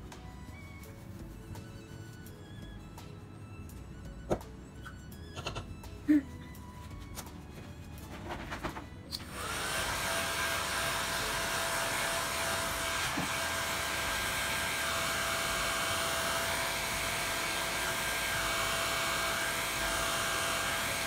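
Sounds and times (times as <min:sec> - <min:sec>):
hair dryer blowing air: 0:09.1 - 0:21.0.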